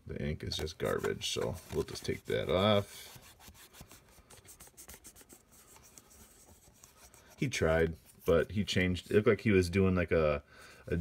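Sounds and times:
fingertip rubbing glossy card: 0.8 - 8.4.

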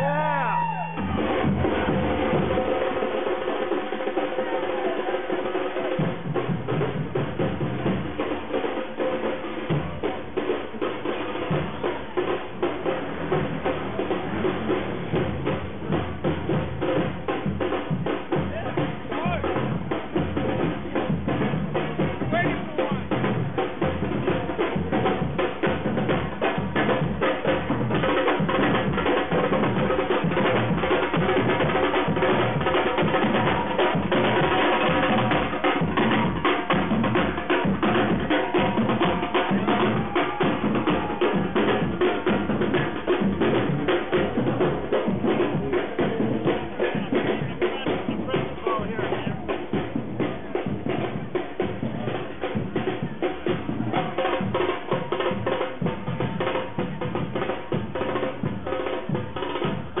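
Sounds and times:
crowd voices: 0.0 - 60.0
marching drums beaten with sticks: 0.0 - 60.0.

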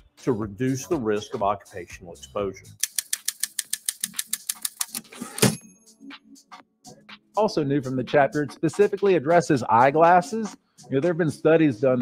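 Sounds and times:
typewriter keystrokes: 2.8 - 5.6
typewriter bell ring: 5.2 - 5.7.

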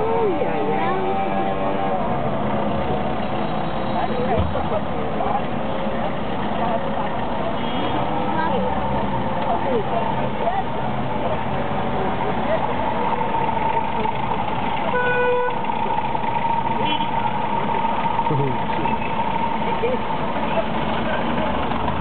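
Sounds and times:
voices talking: 0.0 - 15.0, 15.6 - 21.9
car engine and road noise: 0.0 - 22.0.

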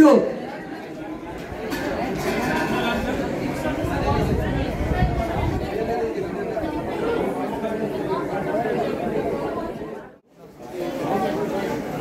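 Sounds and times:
boys chattering: 0.0 - 12.0.

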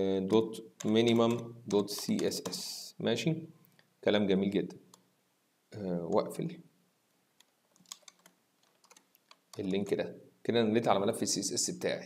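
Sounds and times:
faint keyboard typing: 0.8 - 2.8, 7.4 - 10.0.

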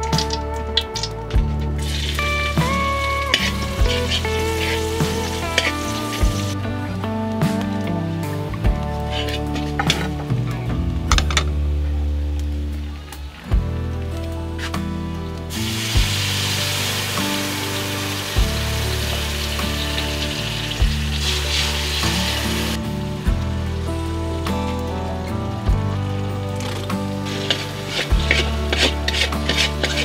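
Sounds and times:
background music: 0.0 - 30.0
metal spatula scraping a wok: 3.2 - 6.4, 27.3 - 30.0
sauce sizzling in a wok: 15.6 - 22.8.

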